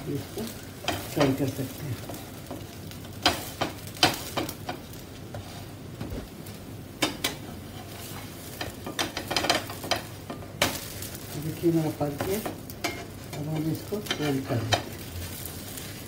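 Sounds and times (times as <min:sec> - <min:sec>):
batter sizzling in oil: 0:00.0 - 0:16.0
spatula scraping and tapping pan: 0:00.6 - 0:05.7, 0:07.0 - 0:11.0, 0:12.1 - 0:15.0.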